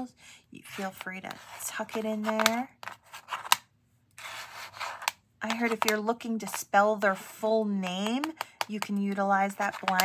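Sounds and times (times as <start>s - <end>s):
tiles sliding across board: 0.7s - 3.6s, 4.2s - 5.9s.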